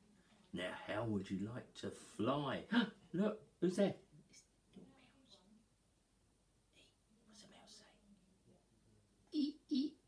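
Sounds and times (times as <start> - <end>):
faint whispered speech: 4.3 - 5.6, 6.7 - 8.6.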